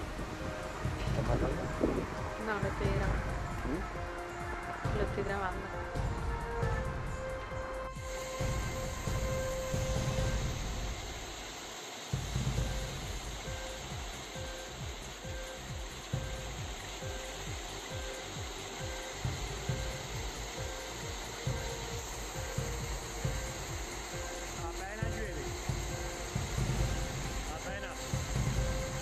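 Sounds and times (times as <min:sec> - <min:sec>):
faint pulsing tone: 0:00.0 - 0:29.0
heavy rain on metal roof: 0:08.0 - 0:29.0.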